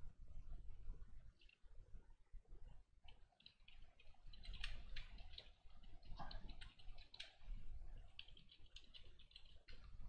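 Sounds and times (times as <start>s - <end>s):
computer keyboard typing: 3.1s - 9.9s.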